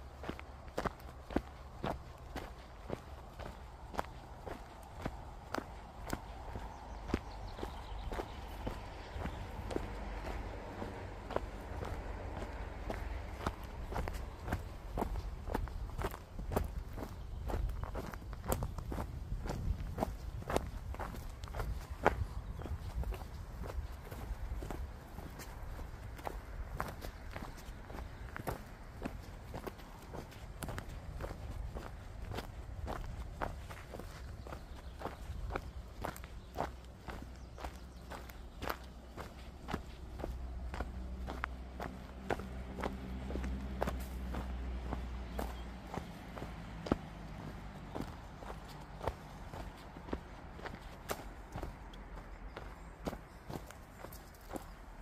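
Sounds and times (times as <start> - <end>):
footsteps on a trail: 0.0 - 55.0.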